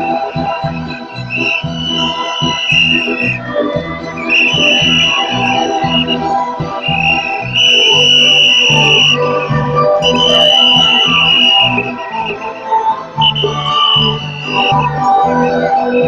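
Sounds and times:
shrill wind instrument: 0:00.0 - 0:16.0.

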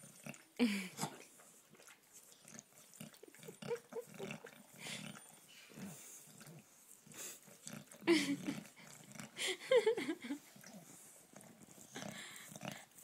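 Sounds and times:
dog licking wetly: 0:00.1 - 0:05.5.

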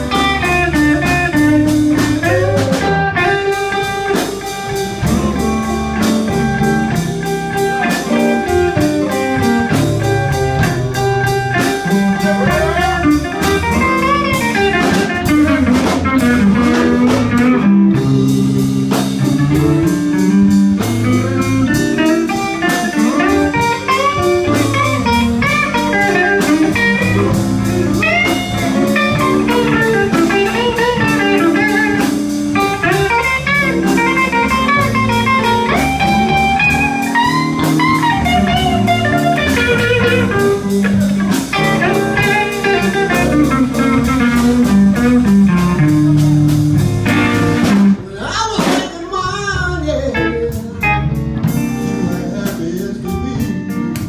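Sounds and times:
bass guitar: 0:00.0 - 0:54.0
drum kit: 0:00.0 - 0:54.0
electric guitar lead: 0:00.0 - 0:54.0.

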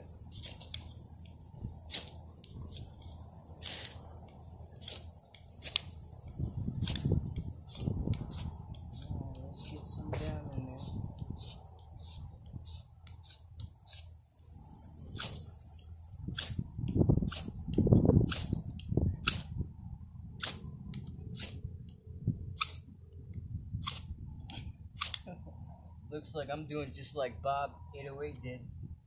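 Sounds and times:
wind rumble on microphone: 0:00.0 - 0:04.8, 0:05.8 - 0:12.9, 0:14.6 - 0:25.0, 0:28.5 - 0:29.0
knife scraping wood: 0:00.3 - 0:01.0, 0:01.8 - 0:06.0, 0:06.8 - 0:14.2, 0:23.8 - 0:25.3.

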